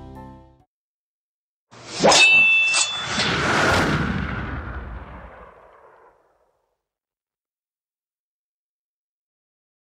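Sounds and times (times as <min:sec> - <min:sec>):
metallic clang with ringing tone: 0:02.0 - 0:03.3.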